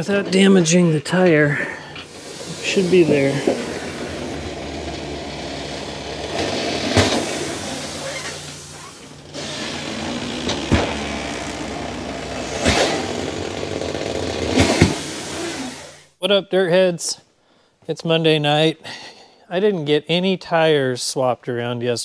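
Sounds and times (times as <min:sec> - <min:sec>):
tire machine humming: 0:00.0 - 0:16.1.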